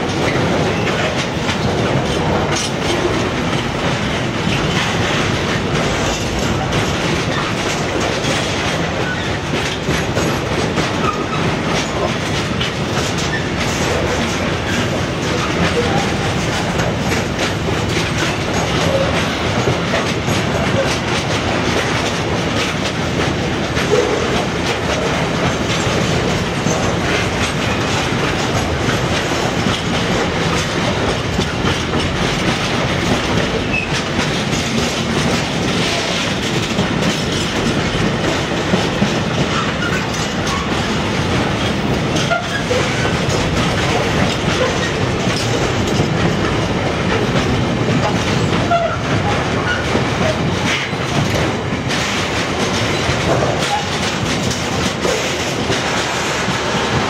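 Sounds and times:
freight train wheels rumbling on rails: 0:00.0 - 0:57.0.

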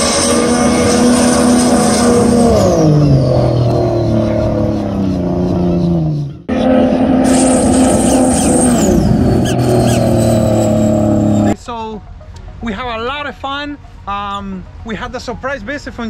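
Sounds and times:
jet ski engines: 0:00.0 - 0:11.6.

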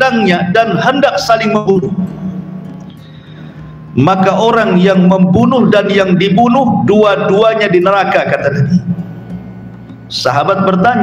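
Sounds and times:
soft background music drone: 0:00.0 - 0:11.0.

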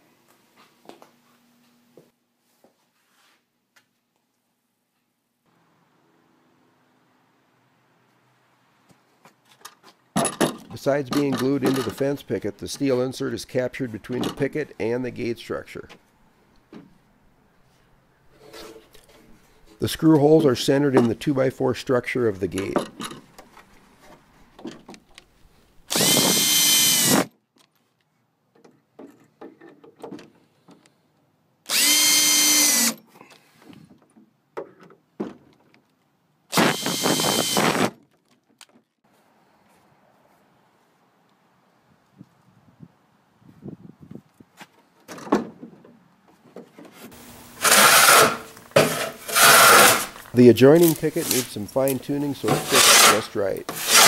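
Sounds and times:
hand tool scraping wood: 0:18.3 - 0:20.3, 0:46.8 - 0:54.0
cordless drill whine: 0:25.9 - 0:27.3, 0:31.7 - 0:33.0, 0:36.5 - 0:37.9.

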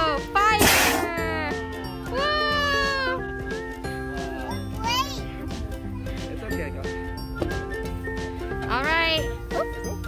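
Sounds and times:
music with held notes: 0:00.0 - 0:10.0.

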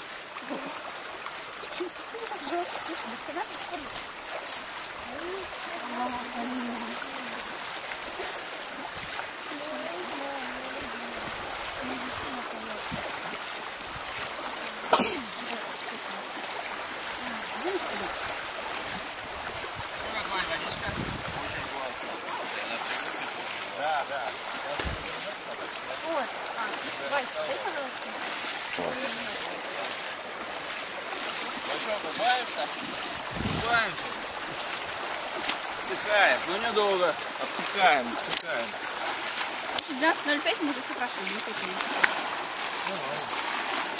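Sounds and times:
legs splashing through water: 0:00.0 - 0:43.9
river water running: 0:00.0 - 0:43.9.

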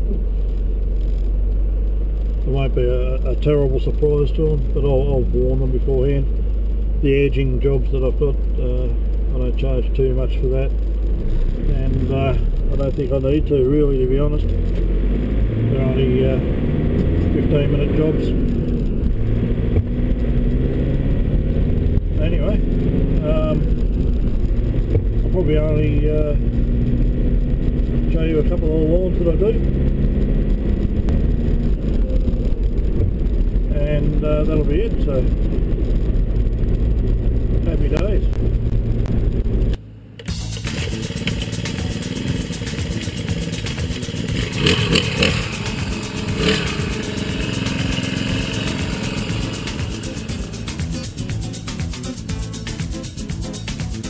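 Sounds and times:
road noise: 0:00.0 - 0:54.0
vehicle engine drone: 0:00.0 - 0:54.0
man's voice: 0:11.6 - 0:14.5, 0:23.2 - 0:23.8, 0:25.3 - 0:26.4, 0:33.7 - 0:35.4.

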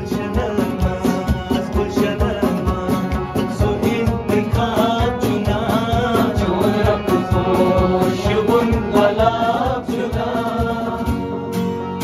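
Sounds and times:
men singing together: 0:00.0 - 0:11.4
acoustic guitar: 0:00.0 - 0:12.0
harmonium: 0:00.0 - 0:12.0.

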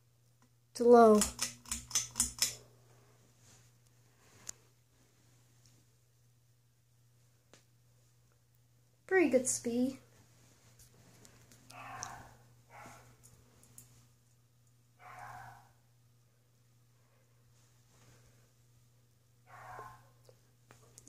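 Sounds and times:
faint low hum: 0:00.0 - 0:21.0
soft breaths close to microphone: 0:02.6 - 0:05.6, 0:16.8 - 0:18.7.

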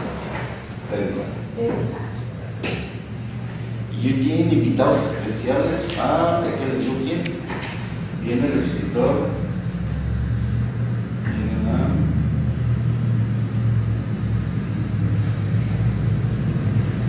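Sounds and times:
low humming rumble: 0:00.0 - 0:17.0.

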